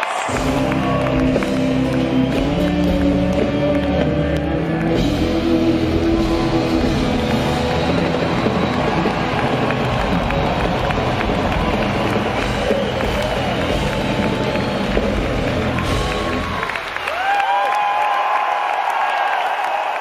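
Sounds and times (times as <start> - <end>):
crowd cheering: 0.0 - 20.0
drums and cymbals crashing: 0.1 - 17.0
live rock band playing: 0.3 - 16.8.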